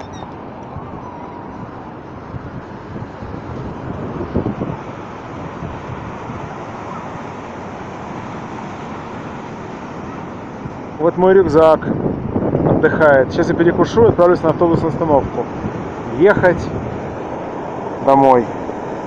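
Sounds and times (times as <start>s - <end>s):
wind buffeting microphone: 0.0s - 19.0s
surf breaking on rocky shore: 0.3s - 19.0s.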